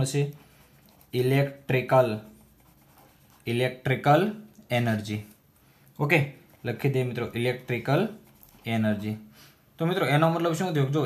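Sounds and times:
man speaking: 0.0s - 0.4s, 1.1s - 2.4s, 3.4s - 5.4s, 6.0s - 11.0s
marker pen scratching on paper: 0.0s - 4.0s, 6.4s - 9.1s.

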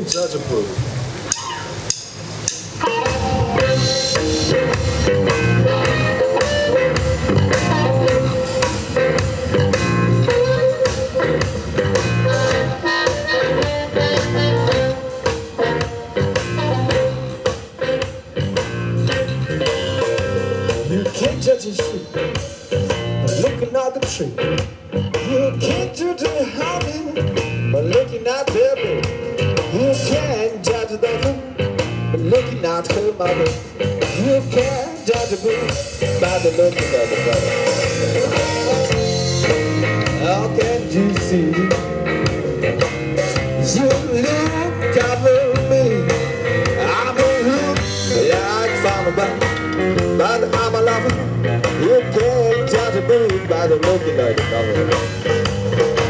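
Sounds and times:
live blues band playing: 0.0s - 56.0s
harmonica wavering line: 2.8s - 17.5s, 36.9s - 43.4s.

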